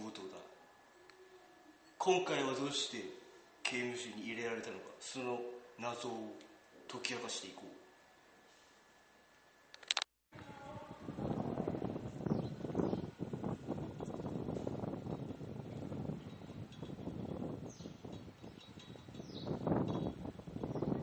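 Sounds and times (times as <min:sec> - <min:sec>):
wind buffeting microphone: 0:10.4 - 0:21.0.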